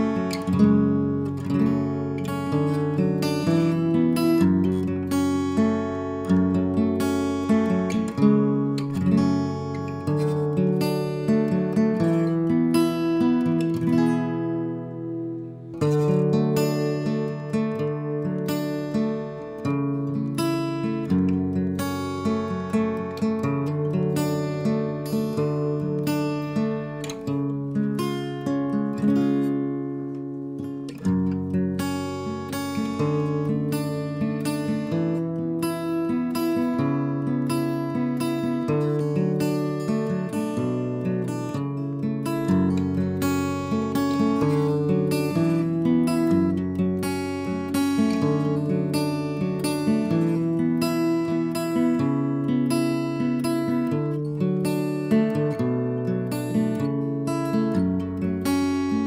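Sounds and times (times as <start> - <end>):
acoustic guitar picking chords: 0.0 - 59.0.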